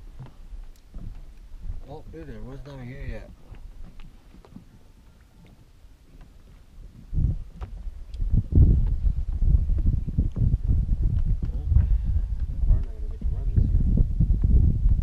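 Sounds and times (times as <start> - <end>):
footsteps on wooden dock: 0.0 - 13.4, 14.1 - 15.0.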